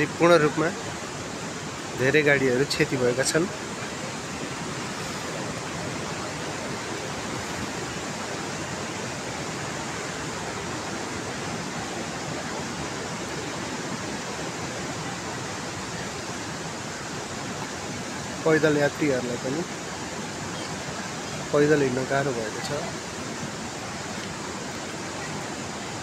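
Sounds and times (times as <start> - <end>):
steady rushing noise: 0.0 - 26.0.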